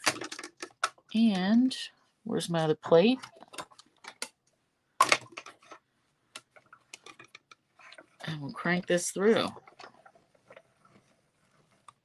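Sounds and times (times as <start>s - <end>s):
plastic plate clack: 0.0s - 1.0s, 5.0s - 5.8s.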